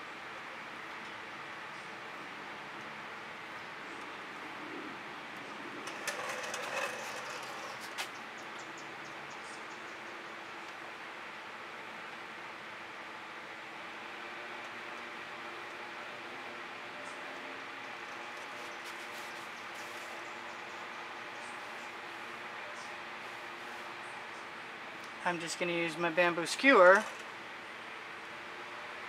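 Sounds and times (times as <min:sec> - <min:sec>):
steady background hum: 0:00.0 - 0:29.0.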